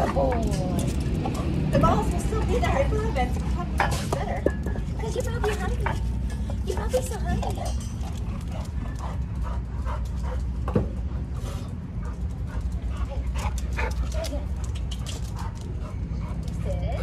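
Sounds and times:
dog claws clicking on concrete: 0.0 - 10.8, 12.0 - 17.0.

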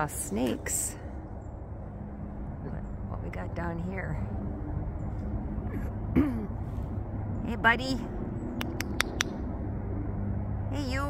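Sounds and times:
low outdoor rumble: 0.0 - 11.0
quick sharp clicks: 8.6 - 9.4.

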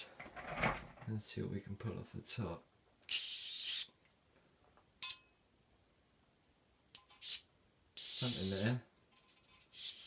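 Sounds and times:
electric arc hissing: 3.1 - 3.9, 8.0 - 8.8.

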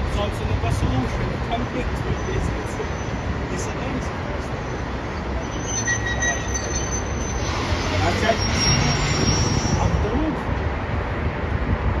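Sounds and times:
diesel locomotive engine droning: 0.0 - 12.0.

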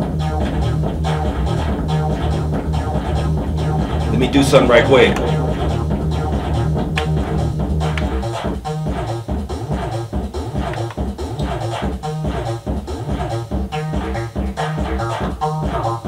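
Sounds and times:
electronic groove with drum beat: 0.0 - 16.0.

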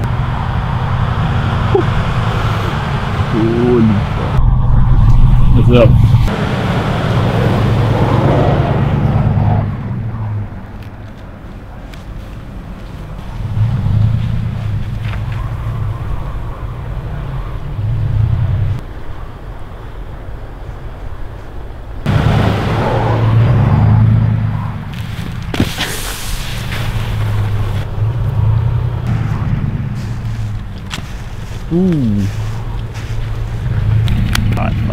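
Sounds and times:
sudden rush of noise: 0.0 - 10.4
truck engine revving: 0.0 - 10.7, 13.2 - 18.8, 22.1 - 34.9.

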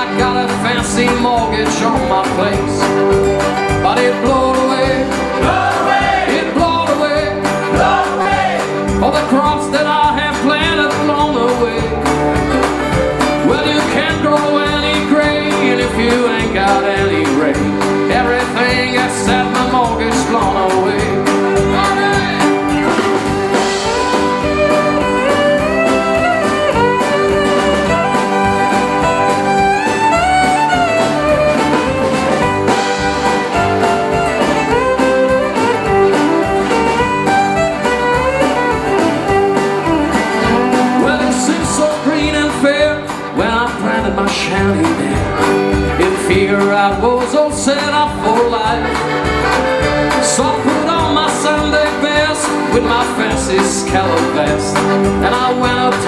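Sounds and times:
accordion: 0.0 - 56.0
band playing: 0.0 - 56.0
fiddle melody: 0.0 - 56.0
strummed acoustic guitars: 0.0 - 56.0
upright bass: 0.0 - 56.0.

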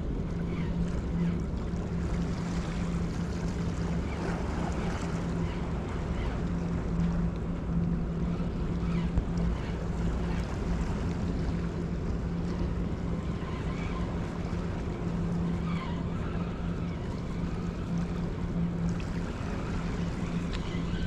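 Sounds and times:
boat engine hum: 0.0 - 21.0.

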